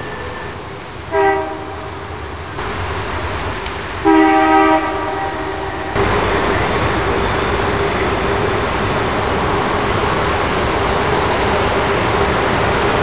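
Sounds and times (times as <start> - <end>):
locomotive air horn chord: 0.0 - 2.1, 4.0 - 6.3
locomotive rumble: 0.0 - 13.0.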